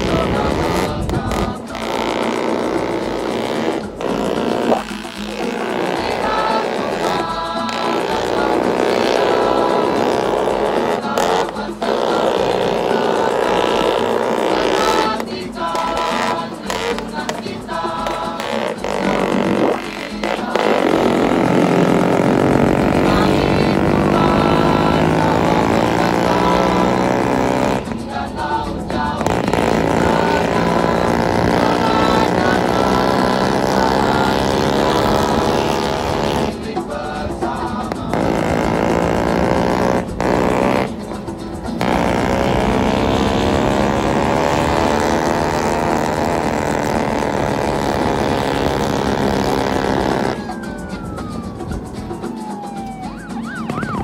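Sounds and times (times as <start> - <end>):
scooter engine running: 0.0 - 54.0.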